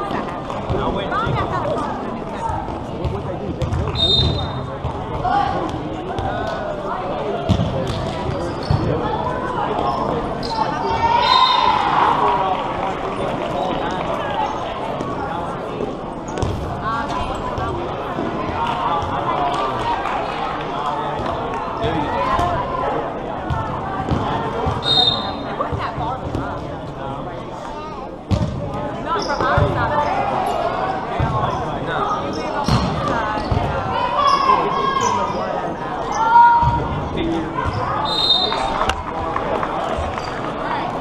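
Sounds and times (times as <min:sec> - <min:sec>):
referee's whistle: 0:04.0 - 0:04.6, 0:24.8 - 0:25.4, 0:38.0 - 0:38.7
people calling out and cheering: 0:09.3 - 0:14.6.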